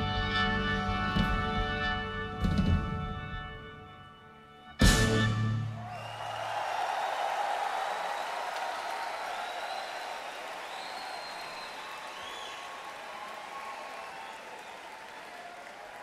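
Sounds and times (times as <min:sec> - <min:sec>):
crowd applauding and cheering: 0:05.6 - 0:16.0
whistles: 0:05.8 - 0:15.8.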